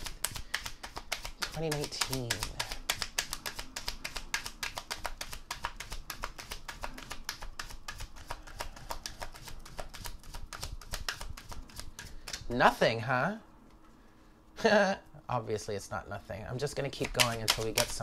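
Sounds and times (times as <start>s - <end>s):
cards being shuffled: 0.0s - 12.8s, 16.5s - 18.0s.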